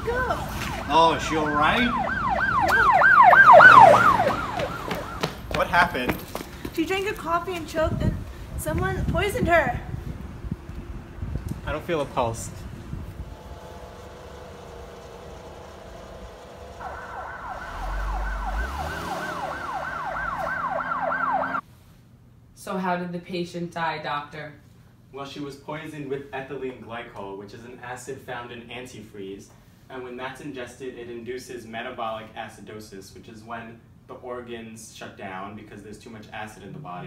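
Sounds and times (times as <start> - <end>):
emergency siren yelping: 0.0 - 5.6, 16.1 - 21.6.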